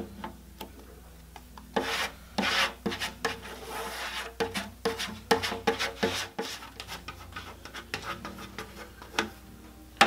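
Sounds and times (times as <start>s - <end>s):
plastic card scraping paste on wood: 1.8s - 9.2s.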